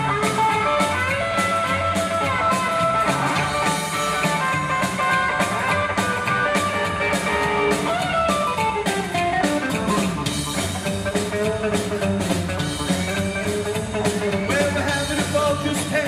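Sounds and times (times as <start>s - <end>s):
drum kit: 0.0s - 16.0s
electric guitar lead line: 0.0s - 16.0s
slapped upright bass: 0.0s - 16.0s.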